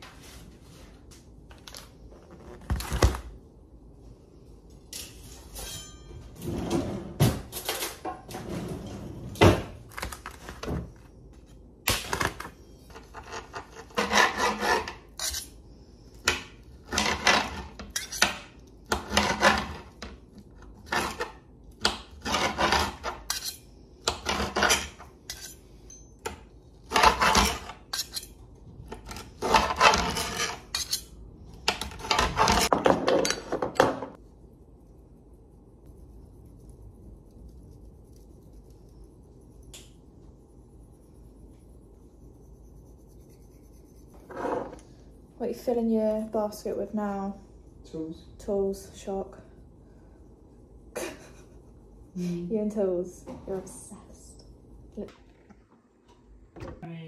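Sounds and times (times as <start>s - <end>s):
knife clicking and scraping on glass: 14.8s - 15.6s, 17.8s - 18.5s, 22.9s - 26.4s, 27.2s - 28.4s, 29.9s - 31.9s.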